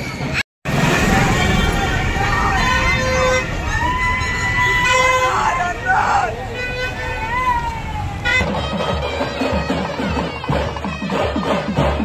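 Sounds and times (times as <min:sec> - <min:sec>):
tractor engine rumble: 0:00.7 - 0:08.6
crowd chatter: 0:00.7 - 0:12.0.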